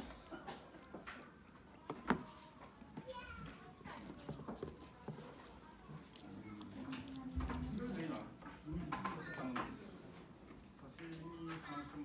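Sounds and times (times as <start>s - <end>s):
children chattering: 0.0s - 10.4s.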